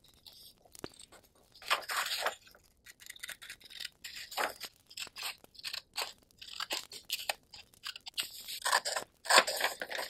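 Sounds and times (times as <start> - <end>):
paper crinkling and rustling: 0.0 - 10.0.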